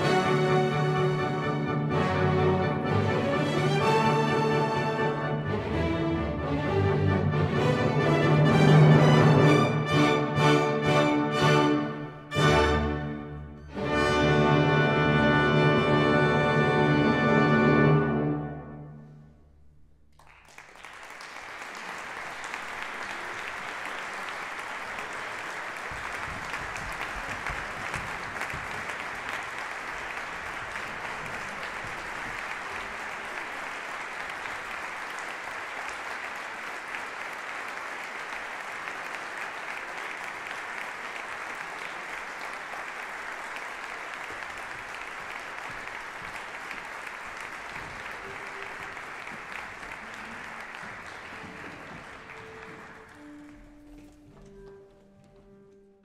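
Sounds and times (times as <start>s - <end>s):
audience applauding: 0.0s - 13.2s, 20.1s - 54.7s.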